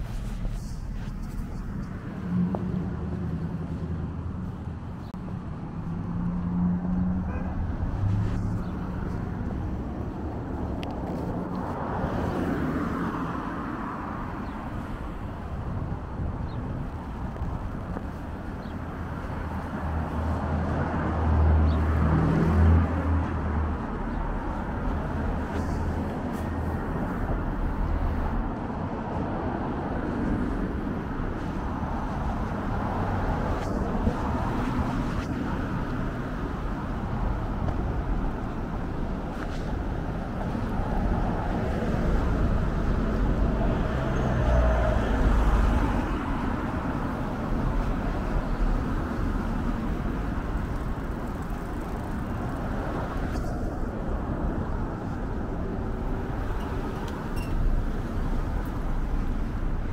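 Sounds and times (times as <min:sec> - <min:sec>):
cars and vans driving past: 0:00.0 - 0:59.9
louder vehicle passing: 0:05.4 - 0:16.0, 0:19.1 - 0:59.9.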